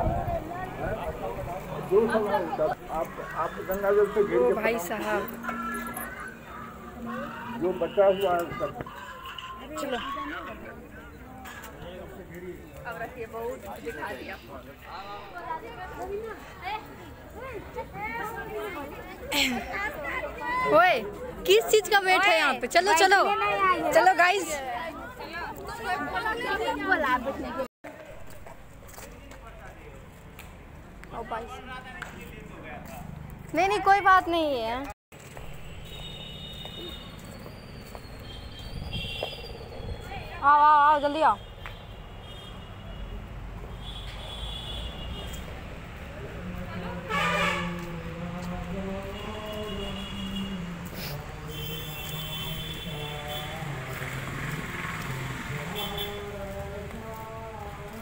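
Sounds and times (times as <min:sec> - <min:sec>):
outdoor background noise: 0:00.0 - 0:58.0.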